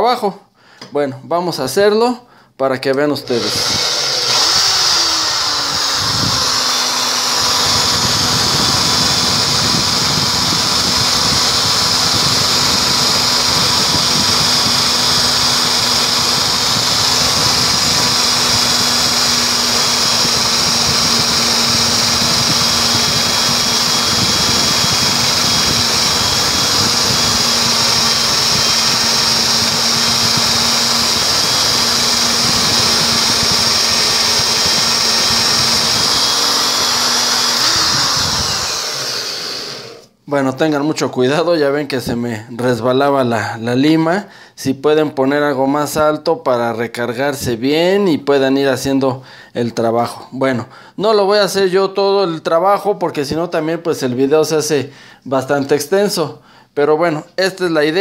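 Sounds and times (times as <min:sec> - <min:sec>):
electric drill motor whine: 0:03.2 - 0:40.1.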